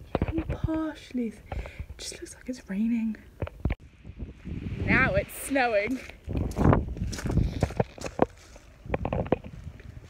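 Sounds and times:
footsteps on leafy grass: 5.8 - 8.9.

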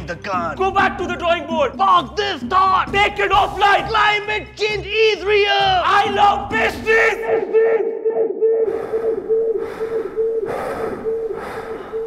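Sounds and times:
steady pulsing tone: 8.7 - 12.0.

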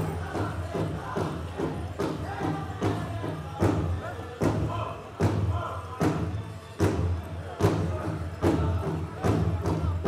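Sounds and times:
people singing: 0.0 - 4.9
heavy drum beats: 0.0 - 10.0.

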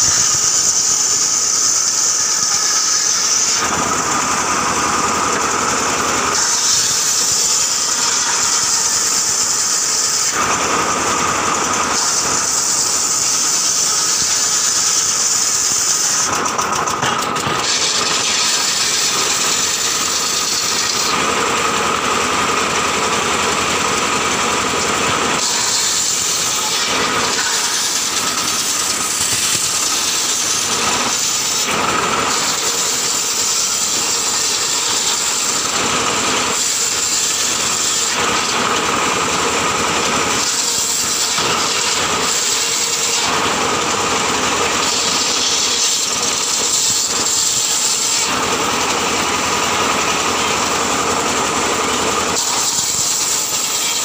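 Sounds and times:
circular saw running: 0.0 - 54.0
saw blade cutting boards: 0.0 - 54.0.

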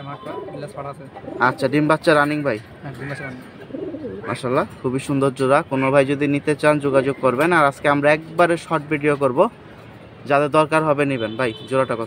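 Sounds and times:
man talking: 0.0 - 3.4, 4.1 - 9.6, 10.3 - 12.0
pigeons cooing: 0.2 - 2.0, 3.0 - 4.5.

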